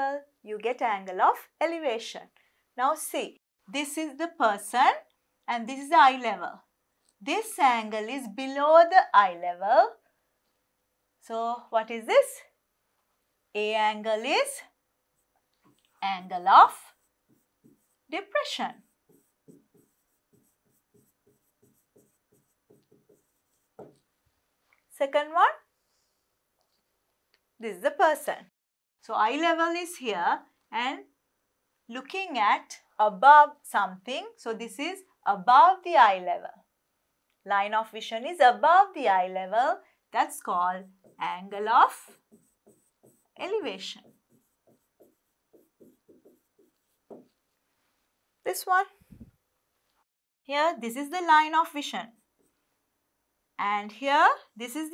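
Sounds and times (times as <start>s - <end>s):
pen scratching on screen: 15.2s - 24.4s, 40.8s - 47.6s.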